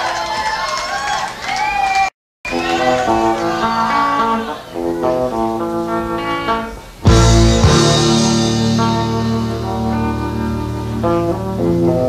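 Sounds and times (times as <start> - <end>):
electric guitar picking ringing notes: 2.5 - 12.0
bass guitar: 2.6 - 12.0
drums: 6.8 - 12.0.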